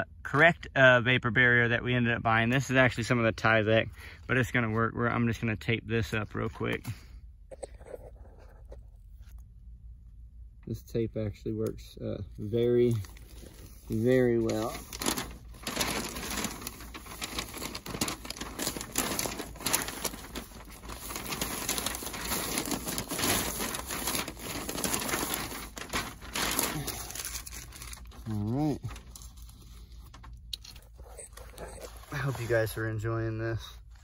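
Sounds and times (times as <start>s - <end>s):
tape rustling and tearing: 12.8s - 32.6s.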